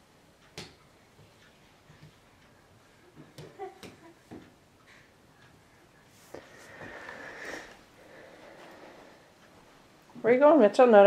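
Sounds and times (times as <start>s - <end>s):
hands slapping tile floor: 3.2s - 4.5s.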